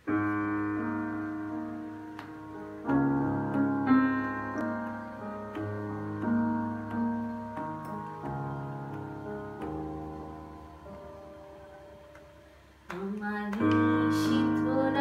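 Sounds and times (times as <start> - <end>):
keyboard piano chords: 0.0 - 15.0.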